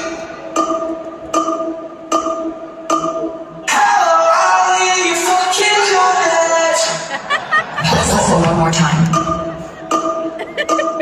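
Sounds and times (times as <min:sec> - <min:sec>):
music with voice: 0:00.0 - 0:11.0.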